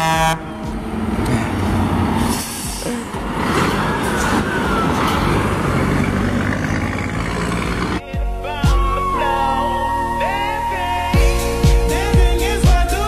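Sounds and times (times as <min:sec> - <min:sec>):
truck diesel engine running: 0:00.0 - 0:08.2
tyres rushing on road: 0:00.0 - 0:08.2.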